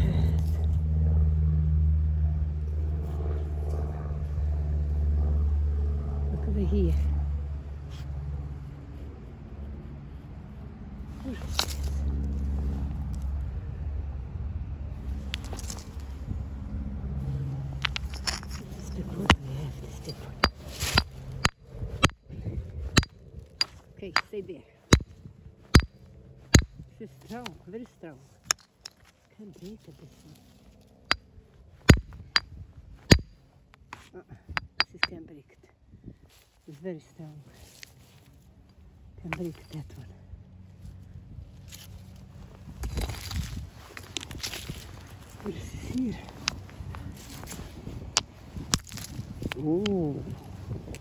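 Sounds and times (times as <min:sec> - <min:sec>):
stone knocking on rock: 0:17.8 - 0:19.5, 0:31.9 - 0:32.5
hard strikes on stone: 0:25.7 - 0:26.8, 0:31.9 - 0:32.5, 0:33.1 - 0:33.3, 0:34.6 - 0:35.2.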